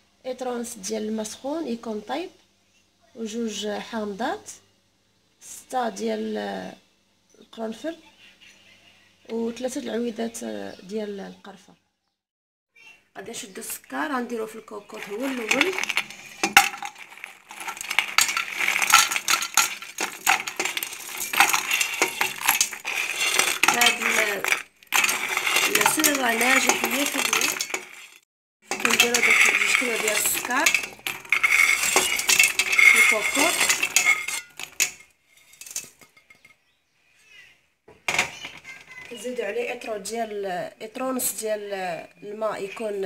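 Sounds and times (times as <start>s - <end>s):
sugar chunks clattering into metal pot: 14.8s - 36.5s.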